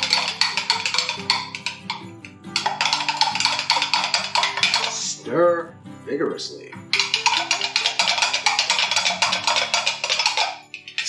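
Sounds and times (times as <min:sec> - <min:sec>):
metal spoon knocking plastic bucket: 0:00.0 - 0:05.3, 0:06.8 - 0:11.0
background music: 0:00.0 - 0:11.0.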